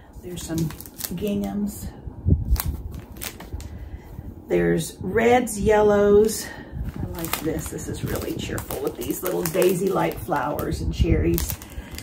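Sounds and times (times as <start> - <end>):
plastic wrapper crinkling: 0.2 - 1.6, 2.5 - 3.8, 6.8 - 12.0.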